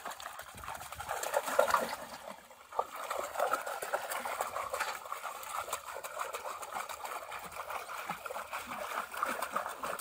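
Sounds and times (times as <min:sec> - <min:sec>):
muddy water splashing: 0:00.0 - 0:10.0.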